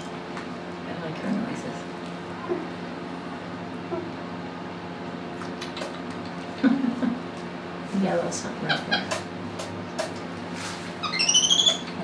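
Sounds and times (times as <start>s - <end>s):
animal high-pitched squeaks: 11.0s - 12.0s.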